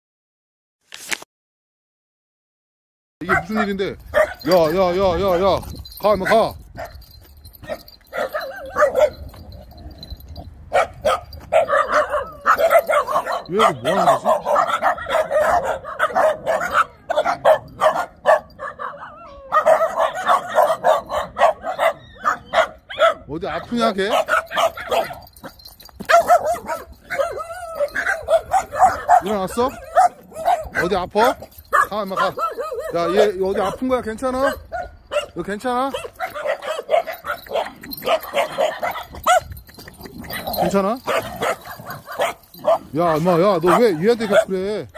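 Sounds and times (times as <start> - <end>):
dogs barking: 3.2 - 44.9.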